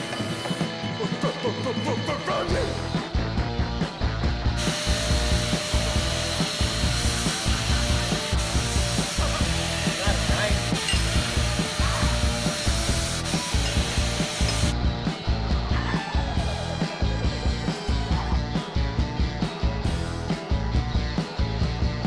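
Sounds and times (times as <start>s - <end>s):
background music with beat: 0.0s - 22.0s.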